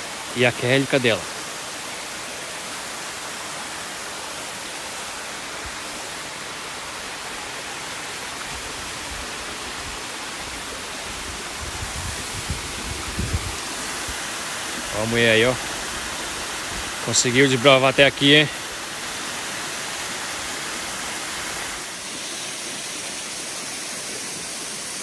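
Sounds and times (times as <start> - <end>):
waterfall rushing: 0.0 - 25.0.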